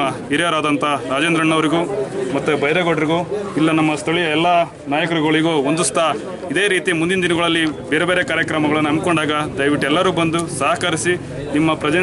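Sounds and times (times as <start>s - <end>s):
man speaking into microphone: 0.0s - 12.0s.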